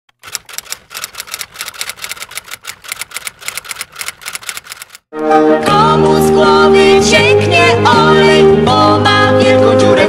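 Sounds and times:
keyboard typing: 0.1s - 5.1s.

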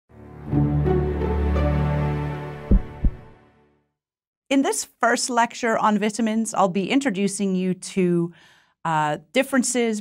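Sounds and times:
short deep thumps: 2.7s - 3.3s.

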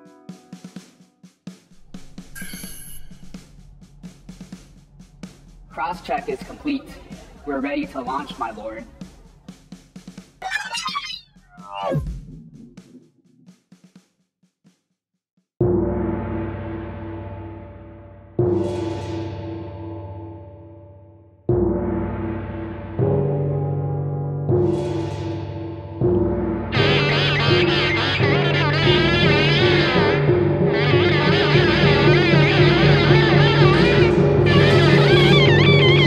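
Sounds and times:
electric guitar chords with vibrato: 26.3s - 36.0s.

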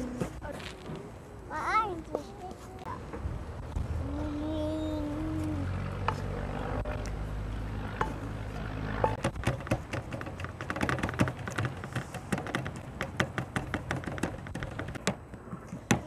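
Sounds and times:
steady low rumble: 3.0s - 9.4s.

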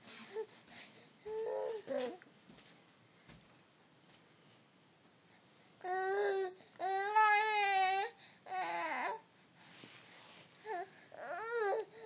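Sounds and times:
baby whining: 1.2s - 2.2s, 5.8s - 9.3s, 10.6s - 12.0s.

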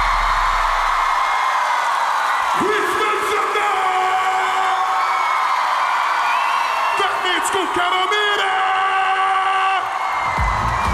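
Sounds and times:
arena crowd noise: 0.0s - 10.9s.

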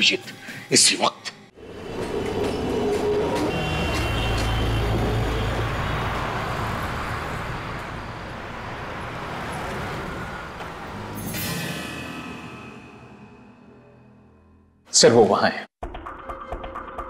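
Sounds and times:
city street traffic rumble: 1.6s - 13.2s.

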